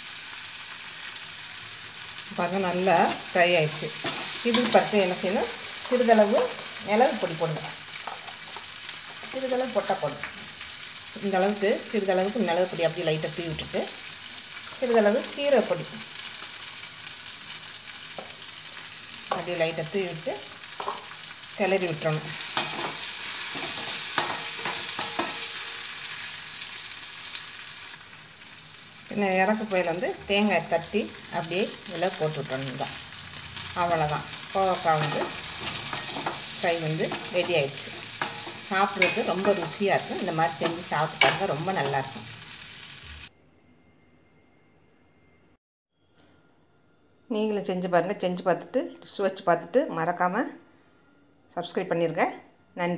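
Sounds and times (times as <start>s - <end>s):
vegetables sizzling in oil: 0.0s - 43.3s
metal spoon scraping a pan: 3.1s - 9.3s, 20.8s - 21.2s, 22.4s - 26.0s, 32.8s - 42.3s.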